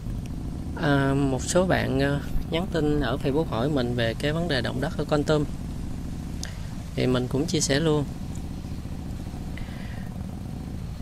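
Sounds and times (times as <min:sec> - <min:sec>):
motorbike engine and tyre rumble: 0:00.0 - 0:11.0.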